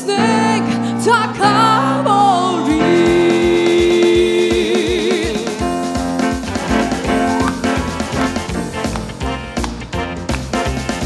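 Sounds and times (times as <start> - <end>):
bass: 0.0 - 11.0
electronic keyboard: 1.5 - 11.0
steady drum beat: 3.1 - 11.0
brass-like held chords: 6.2 - 9.6.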